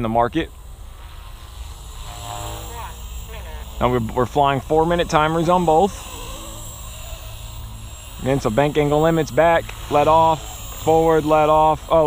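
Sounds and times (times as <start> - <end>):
faint high whine: 0.0 - 12.0
helicopter rotor and motor hum: 0.0 - 12.0.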